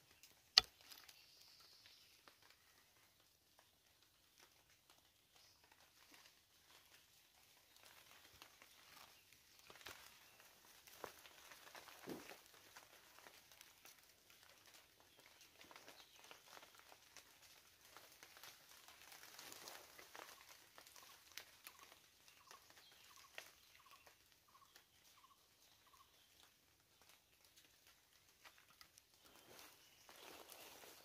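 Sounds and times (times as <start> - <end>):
faint forest ambience: 0.0 - 31.0.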